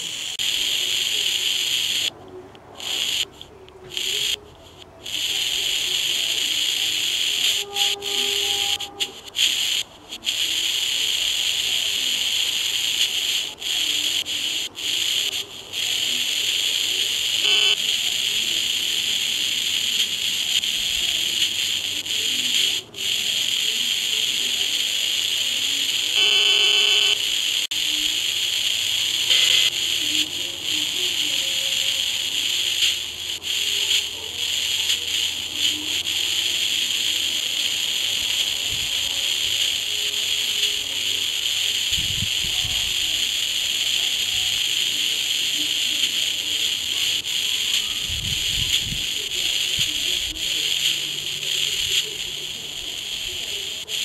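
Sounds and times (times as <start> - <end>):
radio receiver hiss: 0.0 - 54.0.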